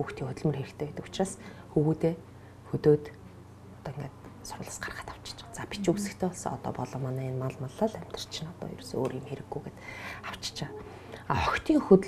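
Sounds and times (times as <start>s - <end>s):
woman talking quietly: 3.8s - 12.0s.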